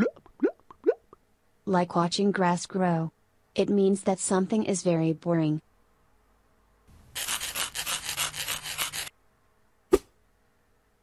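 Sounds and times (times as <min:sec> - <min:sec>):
sharp swish: 0:09.9 - 0:10.2.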